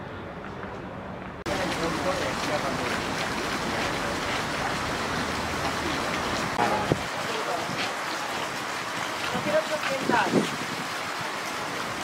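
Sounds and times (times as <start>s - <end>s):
hissing outdoor background noise: 0.0s - 12.0s
faint voices: 5.7s - 8.4s.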